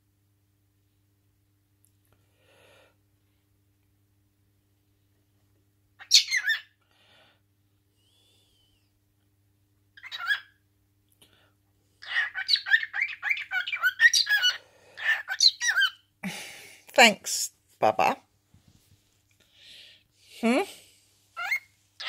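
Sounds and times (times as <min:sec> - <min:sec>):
cockatiel chirping and squawking: 0:06.0 - 0:06.8, 0:10.0 - 0:10.6, 0:12.0 - 0:16.1, 0:21.4 - 0:21.7.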